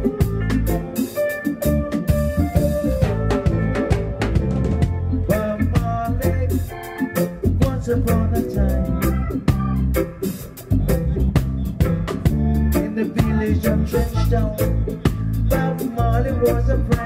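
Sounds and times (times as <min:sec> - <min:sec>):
drum kit steady beat: 0:00.0 - 0:17.0
heavy bass line: 0:00.0 - 0:17.0
organ chords: 0:00.0 - 0:17.0
reggae band playing: 0:00.0 - 0:17.0.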